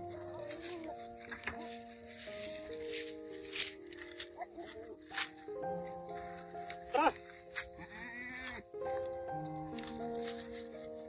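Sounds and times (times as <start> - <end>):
background music with held notes: 0.0 - 11.0
goat bleating: 6.9 - 8.6.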